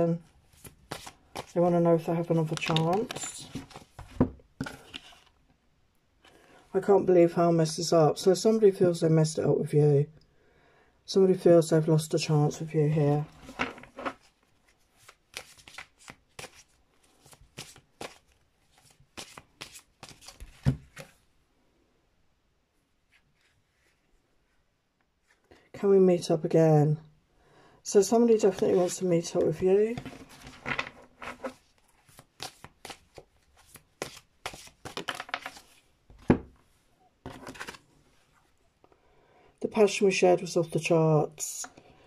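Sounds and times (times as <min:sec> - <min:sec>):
cards being shuffled: 0:00.5 - 0:05.3, 0:13.1 - 0:21.1, 0:28.3 - 0:36.4, 0:37.3 - 0:37.9.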